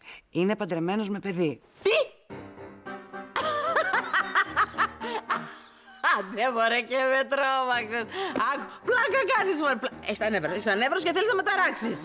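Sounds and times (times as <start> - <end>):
woman laughing heartily: 3.4 - 6.3.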